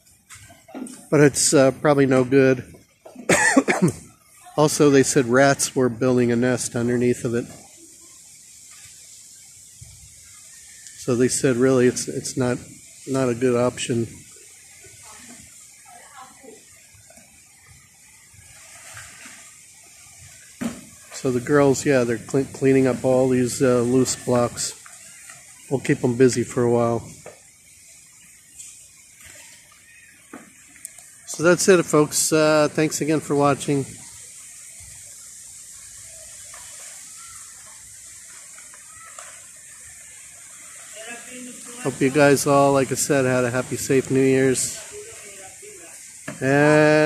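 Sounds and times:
steady high hiss: 0:00.0 - 0:47.0.

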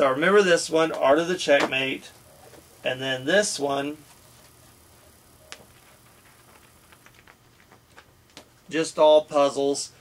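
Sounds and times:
book handling sounds: 0:05.4 - 0:08.6.

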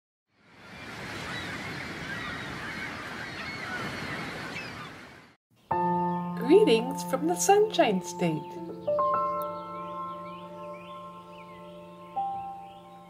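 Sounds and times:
bird calls: 0:00.6 - 0:05.3, 0:08.4 - 0:13.0
music with bell-like tones: 0:05.8 - 0:13.0.

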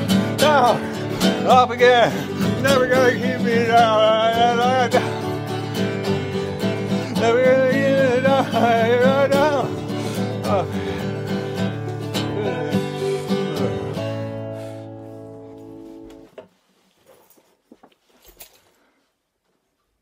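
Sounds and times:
strummed acoustic guitar: 0:00.0 - 0:16.3
faint clicks and handling sounds: 0:16.0 - 0:20.0.

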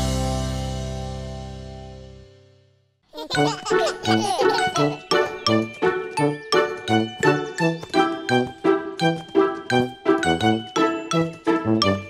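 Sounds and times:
upbeat instrumental children's music: 0:03.2 - 0:12.0.

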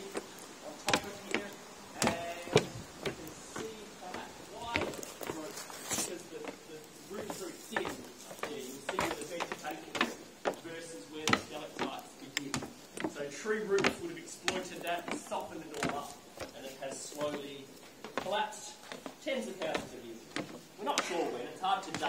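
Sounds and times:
sharp knocks and taps: 0:00.1 - 0:06.6, 0:07.2 - 0:10.6, 0:11.2 - 0:13.2, 0:13.8 - 0:16.6
group of people talking: 0:20.8 - 0:22.0.

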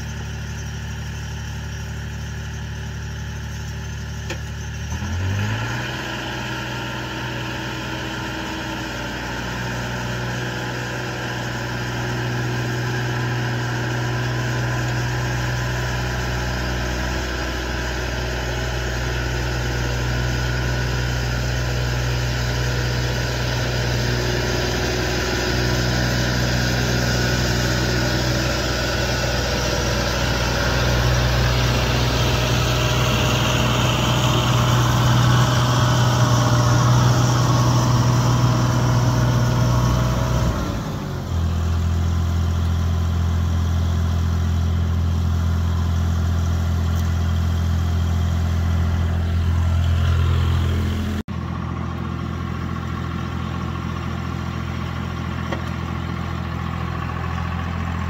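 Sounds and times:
small loader engine running: 0:00.0 - 0:58.0.

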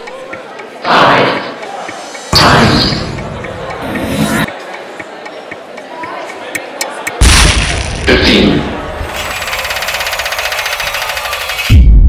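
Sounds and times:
rapid mechanical rattle: 0:09.0 - 0:11.8.

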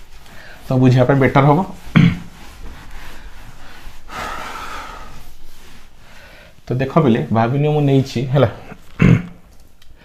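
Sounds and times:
cloth rubbing on whiteboard: 0:00.0 - 0:09.0.

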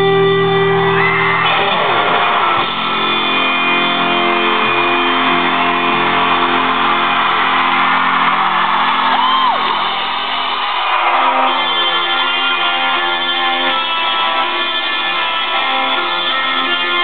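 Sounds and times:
crowd screaming and cheering: 0:00.0 - 0:17.0
live pop-rock band: 0:00.0 - 0:17.0.

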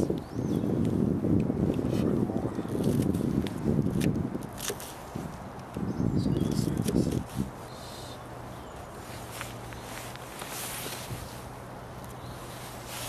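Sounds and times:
wind buffeting microphone: 0:00.0 - 0:11.6.

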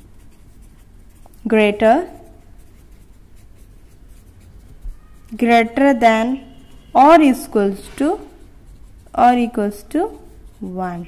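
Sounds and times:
pen scratching on paper: 0:00.0 - 0:06.0, 0:06.9 - 0:11.0.

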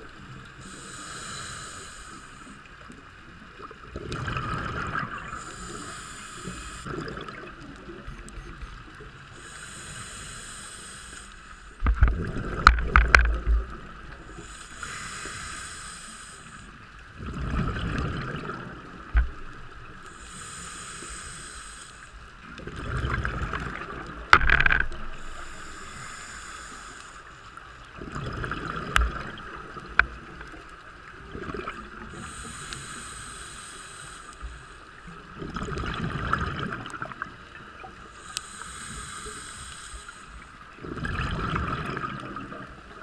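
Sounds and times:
diver breathing through regulator: 0:00.6 - 0:02.6, 0:05.2 - 0:07.0, 0:09.3 - 0:11.9, 0:14.3 - 0:16.8, 0:20.0 - 0:22.2, 0:24.4 - 0:27.5, 0:32.0 - 0:35.1, 0:38.0 - 0:40.6
gurgling exhaled bubbles: 0:03.8 - 0:05.4, 0:06.8 - 0:08.3, 0:11.9 - 0:14.4, 0:17.2 - 0:19.5, 0:22.5 - 0:25.3, 0:28.0 - 0:30.6, 0:31.2 - 0:32.2, 0:35.3 - 0:37.9, 0:40.8 - 0:42.8.

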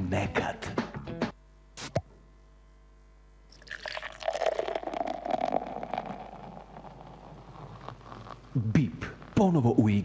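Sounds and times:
beer pouring into a glass: 0:03.5 - 0:08.4.

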